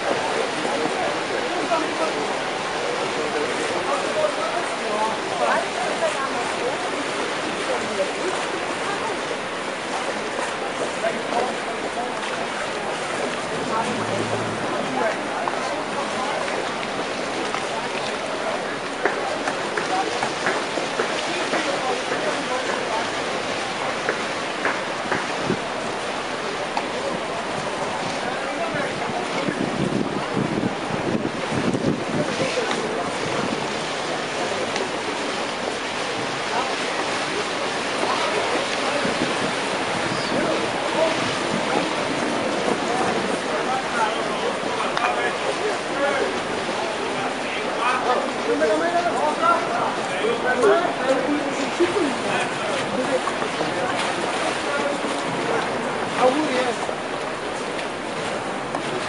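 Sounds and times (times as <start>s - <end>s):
water rushing along boat hull: 0.0s - 59.0s
indistinct voices talking: 11.0s - 17.1s
wind on microphone: 25.0s - 26.1s, 27.1s - 34.3s, 37.8s - 44.9s.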